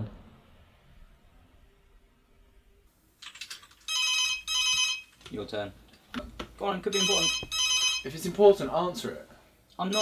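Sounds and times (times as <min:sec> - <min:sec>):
computer keyboard typing: 0:03.2 - 0:04.0
desk telephone ringing: 0:03.9 - 0:05.2, 0:06.9 - 0:08.2.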